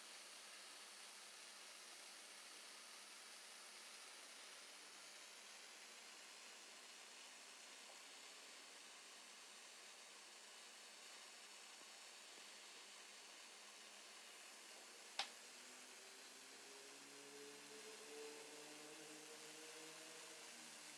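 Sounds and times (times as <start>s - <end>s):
faint steady hiss: 0.0s - 20.9s.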